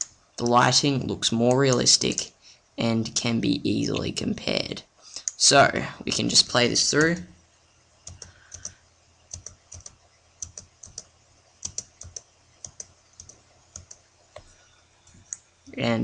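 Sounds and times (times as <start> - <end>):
keyboard and mouse clicks: 8.0 - 14.5.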